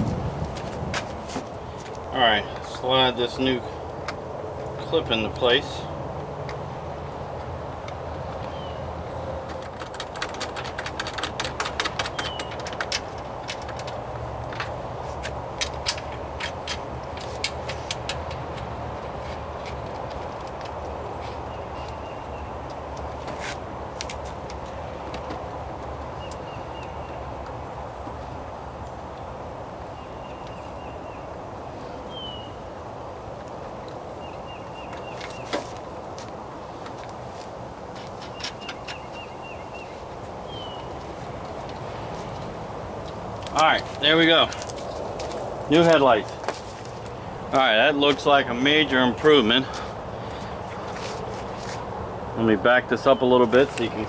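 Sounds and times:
bird chirps: 8.4 - 8.9, 12.0 - 12.7, 32.1 - 32.6, 38.2 - 41.0.

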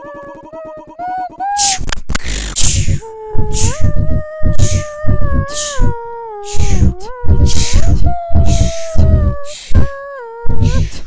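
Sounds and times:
beatboxed drum beat: 0.0 - 11.0.

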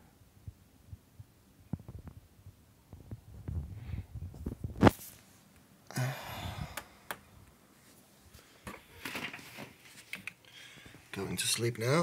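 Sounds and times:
phone handling clicks and rustles: 8.6 - 10.4.

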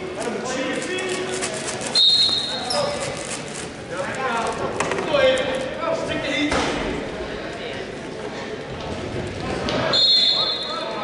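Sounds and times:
shrill whistle: 1.9 - 2.8, 9.9 - 10.9.

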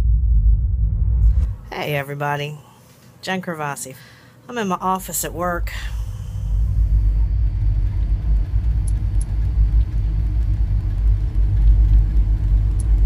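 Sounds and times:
deep rumble: 0.0 - 1.8, 4.8 - 13.0
faint hum: 0.0 - 13.0.

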